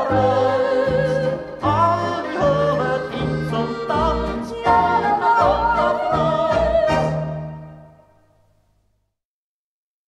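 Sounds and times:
accordion: 0.0s - 8.0s
oom-pah bass: 0.0s - 8.2s.

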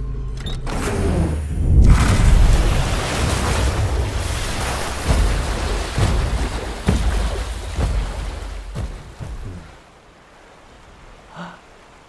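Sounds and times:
deep rumble: 0.0s - 9.8s
steady rushing noise: 1.3s - 12.0s.

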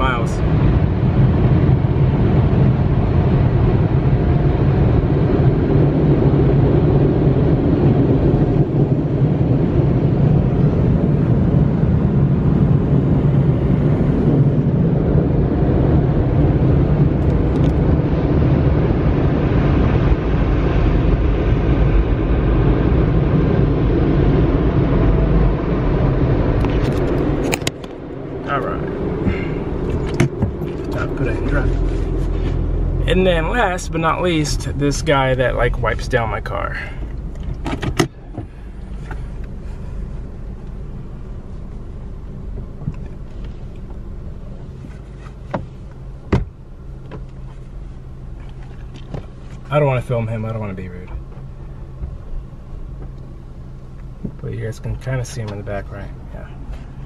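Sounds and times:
car wash blower dryers humming: 0.0s - 57.0s.

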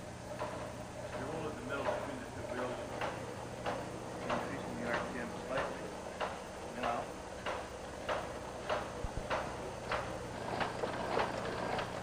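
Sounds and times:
mechanism knocking rhythmically: 0.0s - 12.0s.

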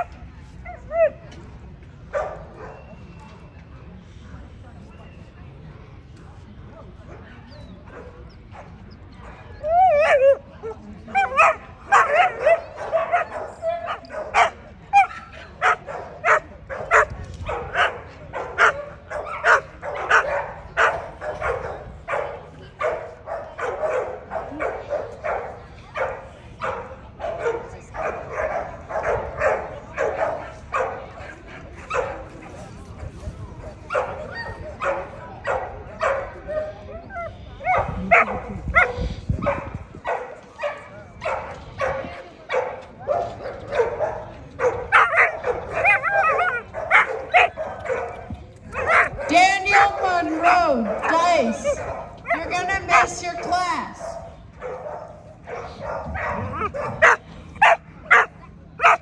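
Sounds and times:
dog barking: 11.2s - 31.1s, 37.2s - 59.0s.

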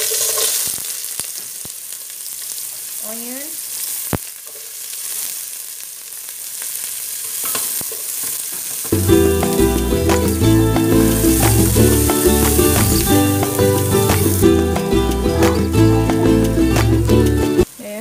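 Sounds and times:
onion sizzling in hot oil: 0.0s - 18.0s
background music with steady beat: 9.0s - 17.7s.

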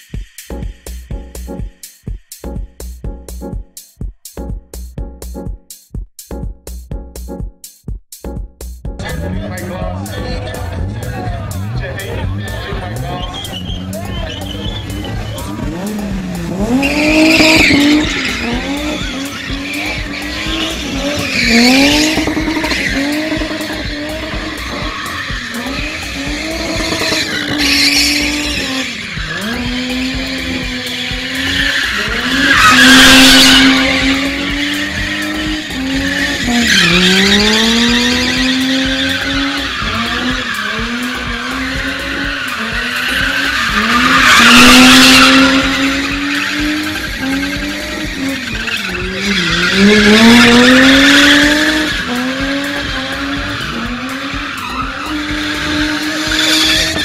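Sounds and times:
tyres skidding and squealing: 9.0s - 57.0s
car engine at high revs: 9.1s - 57.0s.

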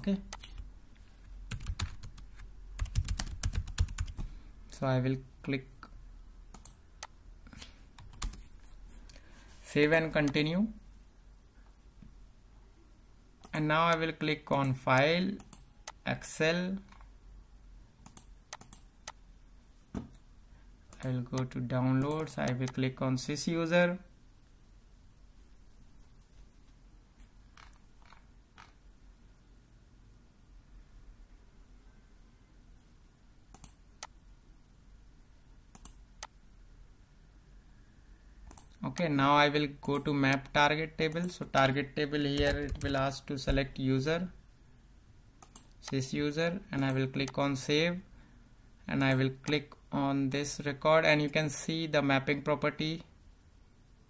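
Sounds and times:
computer mouse clicking: 0.3s - 0.6s, 6.5s - 8.5s, 18.0s - 19.2s, 33.5s - 34.2s, 35.7s - 36.4s, 38.5s - 39.1s, 42.4s - 43.0s, 45.4s - 46.0s
computer keyboard keystrokes: 1.5s - 2.2s, 2.8s - 4.3s, 8.0s - 8.4s, 42.4s - 43.0s.

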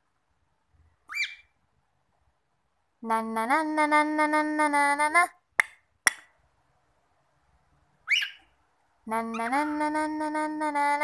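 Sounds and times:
cockatiel chirp sliding upward: 8.0s - 8.5s.

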